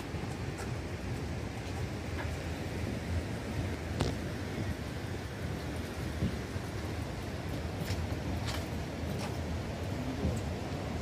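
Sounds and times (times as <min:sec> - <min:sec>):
river rushing: 0:00.0 - 0:11.0
wind noise on microphone: 0:00.0 - 0:11.0.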